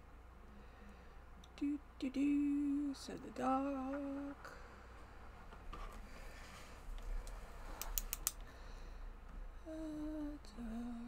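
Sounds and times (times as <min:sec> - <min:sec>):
keyboard clicks: 0:07.8 - 0:08.4
woman humming: 0:09.6 - 0:11.0.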